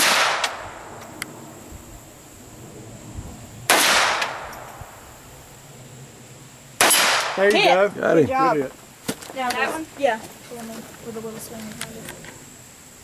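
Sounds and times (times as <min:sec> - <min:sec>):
pistol shots with echo: 0:00.0 - 0:00.7, 0:03.7 - 0:04.7, 0:06.8 - 0:07.4.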